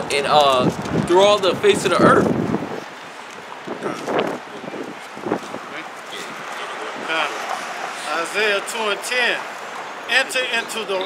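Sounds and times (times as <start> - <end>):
wind noise on microphone: 0.0 - 7.8
street ambience: 0.0 - 11.0.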